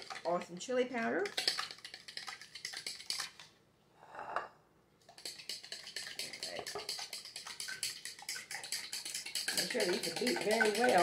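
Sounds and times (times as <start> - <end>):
fork beating eggs in bowl: 0.0 - 3.5, 5.0 - 11.0.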